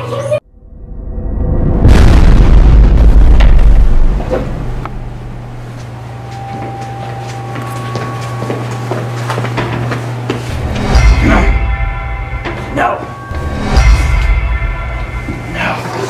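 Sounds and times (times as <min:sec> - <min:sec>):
deep boom: 0:00.4 - 0:05.7, 0:10.6 - 0:15.6
low steady drone: 0:00.4 - 0:08.5, 0:10.4 - 0:16.0.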